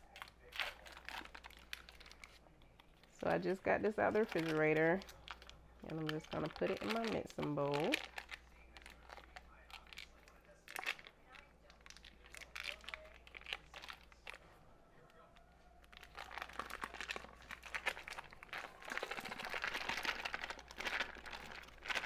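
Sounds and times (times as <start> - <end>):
foil wrapper crinkling: 0.0 - 14.4, 15.2 - 22.0.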